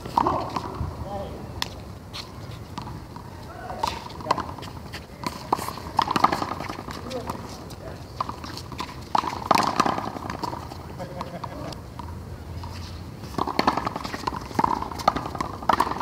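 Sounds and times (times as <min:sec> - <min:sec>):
players calling out: 0:03.2 - 0:08.6.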